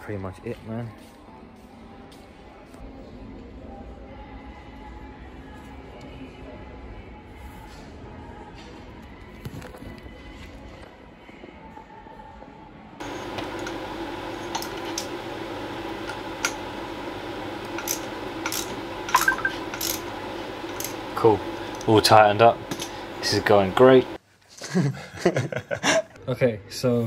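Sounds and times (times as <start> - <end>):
steady hum: 13.0 - 24.2.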